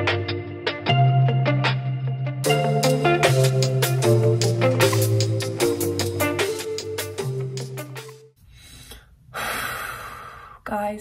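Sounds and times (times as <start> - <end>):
upbeat intro music: 0.0 - 8.4
woman breathing out heavily: 8.4 - 10.6.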